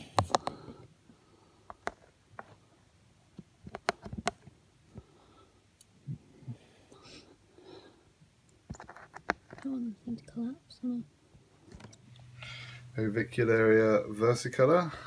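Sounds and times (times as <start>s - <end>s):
sharp clicks and taps: 3.4s - 4.5s.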